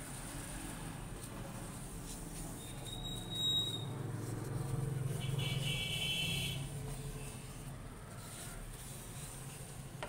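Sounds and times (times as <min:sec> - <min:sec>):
tissue rubbing on glass and metal: 0:00.1 - 0:10.0
high squeak: 0:02.6 - 0:03.9.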